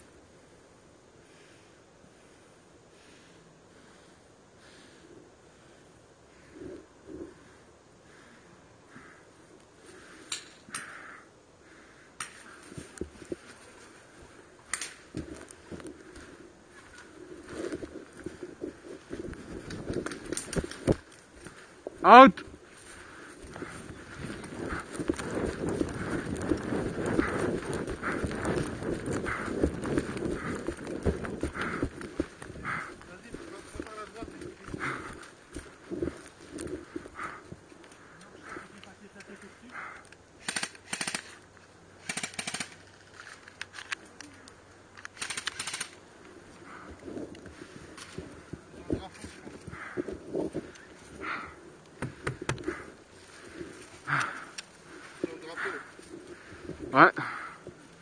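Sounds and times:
footsteps over grass: 0:12.4 - 0:39.6, 0:46.0 - 0:57.0
automatic airsoft gunfire: 0:40.4 - 0:41.4, 0:42.0 - 0:42.8.

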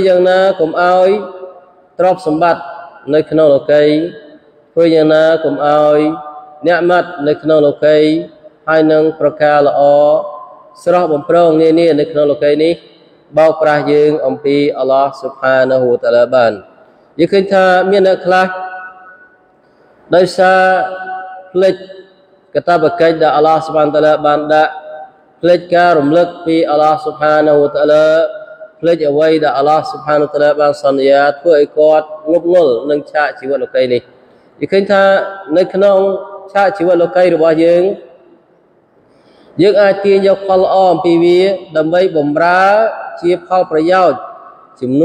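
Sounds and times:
man chanting melodically: 0:00.0 - 0:19.3, 0:20.1 - 0:38.3, 0:39.5 - 0:45.0.

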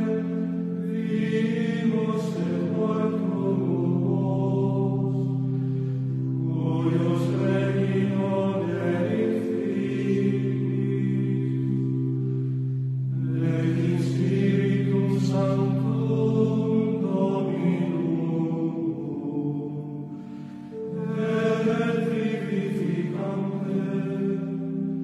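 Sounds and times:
choir chanting slow sustained lines: 0:00.0 - 0:25.0.

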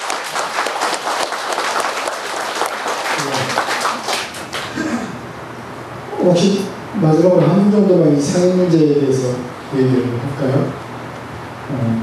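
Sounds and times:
crowd applauding: 0:00.0 - 0:05.1.

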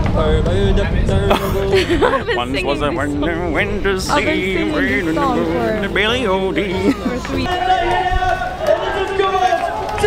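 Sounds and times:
person laughing: 0:01.3 - 0:02.6, 0:06.7 - 0:07.2.

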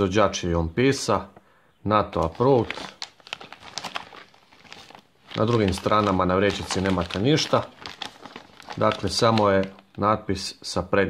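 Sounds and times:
plastic bag crinkling: 0:02.1 - 0:10.1.

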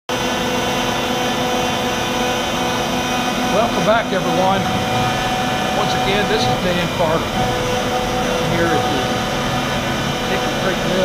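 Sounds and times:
dust collector running: 0:00.1 - 0:11.0
router spindle carving wood: 0:02.6 - 0:11.0.

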